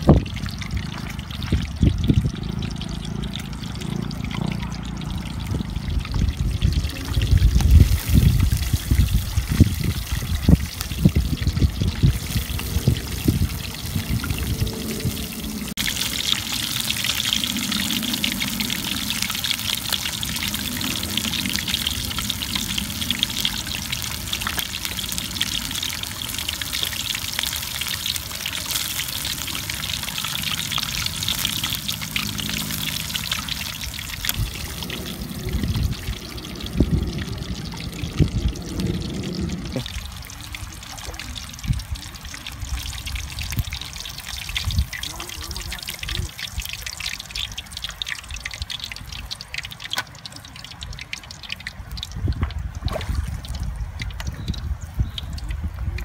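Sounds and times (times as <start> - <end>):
wind buffeting microphone: 0.0 - 2.9, 5.0 - 26.6, 32.8 - 46.8, 51.8 - 56.0
oil sizzling in a pan: 4.4 - 52.5.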